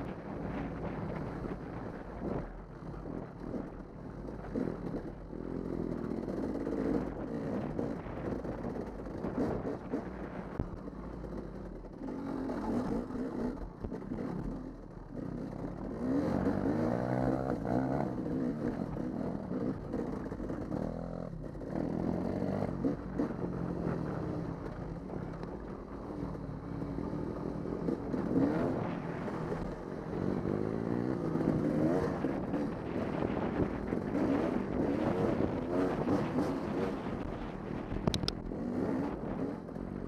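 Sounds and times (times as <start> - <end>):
dirt bike engine revving: 25.9 - 40.0.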